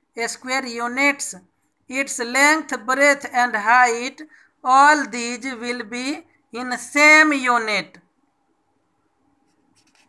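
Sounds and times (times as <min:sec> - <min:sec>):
hand brushing paper page: 0:09.4 - 0:10.0.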